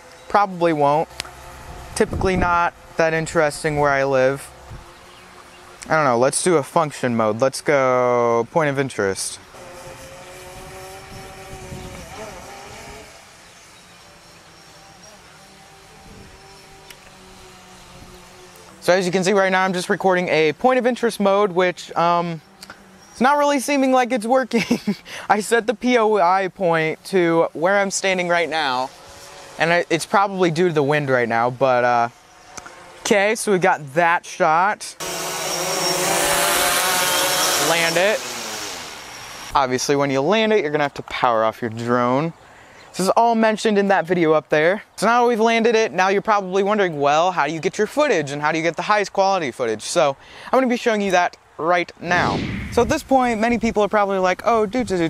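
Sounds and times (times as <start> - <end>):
drone propellers humming: 0.0 - 6.6, 7.7 - 33.4, 35.0 - 39.8, 52.0 - 54.1
wind rumbling on microphone: 1.4 - 5.1, 9.8 - 13.2, 15.8 - 18.3, 52.0 - 55.0.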